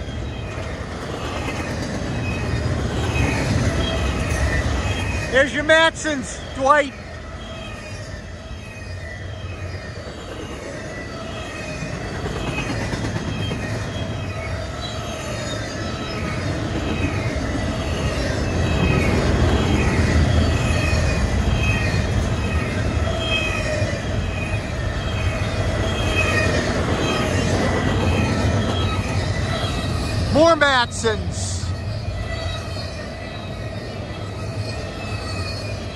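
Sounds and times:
high wheel squeals: 0.0s - 35.9s
train wheels rumbling on rail: 0.0s - 35.9s.

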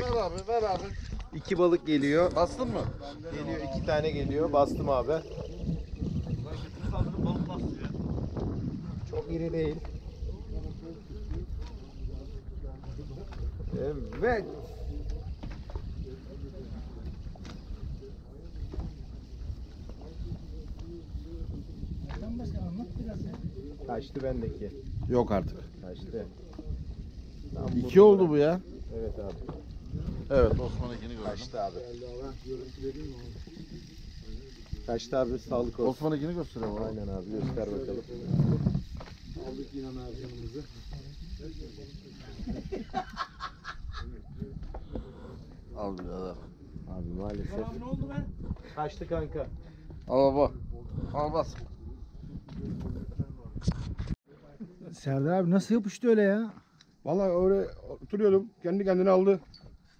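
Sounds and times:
men talking: 0.0s - 53.6s, 54.2s - 59.7s.

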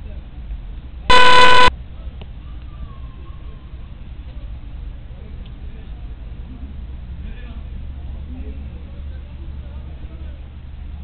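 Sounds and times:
loud distorted horn blast: 1.1s - 1.7s.

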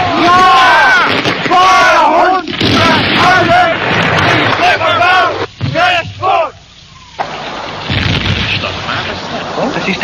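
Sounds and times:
men calling out loudly: 4.4s - 6.7s.

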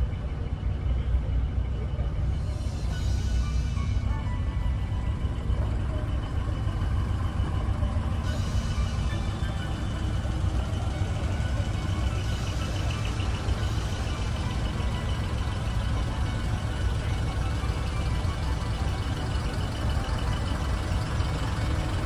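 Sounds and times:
faint music: 0.0s - 22.0s
truck engines idling: 0.0s - 22.0s.

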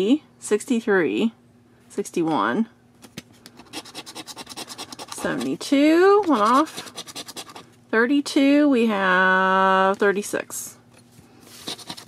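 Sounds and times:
coin scraping scratch-off ticket: 3.6s - 5.6s, 6.2s - 7.6s, 11.6s - 12.0s.

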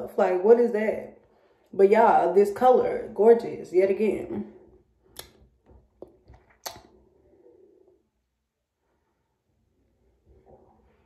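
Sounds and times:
wet lip smacks: 6.0s - 7.0s.

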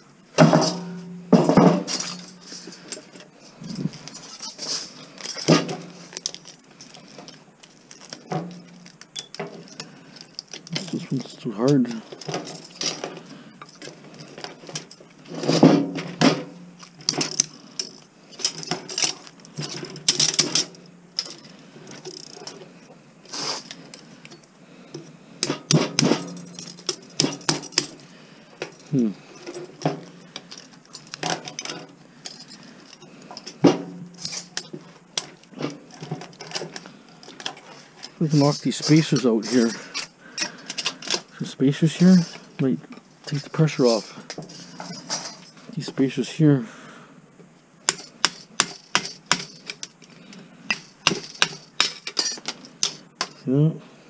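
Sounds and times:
hand tools clinking on metal: 0.4s - 15.6s, 23.6s - 28.0s, 28.6s - 33.6s, 34.2s - 46.1s, 47.9s - 53.4s.

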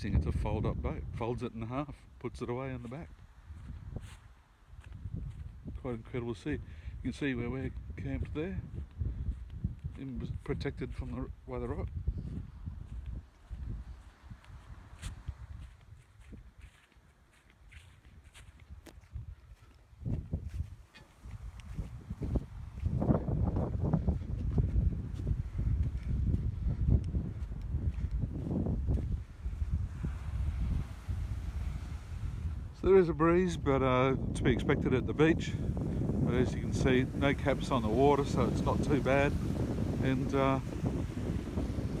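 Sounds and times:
wind rumbling on microphone: 0.0s - 42.0s
footsteps on soft sand: 0.1s - 42.0s.

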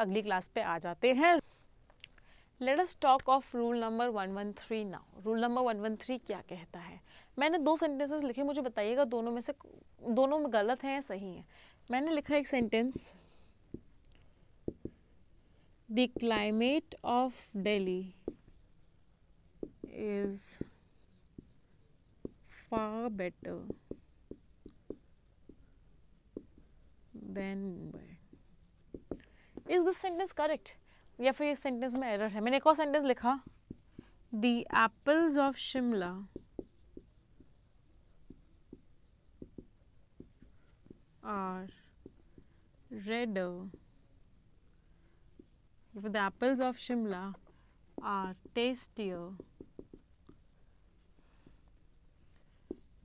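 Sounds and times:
marker pen writing on whiteboard: 11.9s - 53.0s
marker tip ticking on board: 19.4s - 20.0s, 23.4s - 26.8s, 28.3s - 29.8s, 36.2s - 41.0s, 48.0s - 50.5s.

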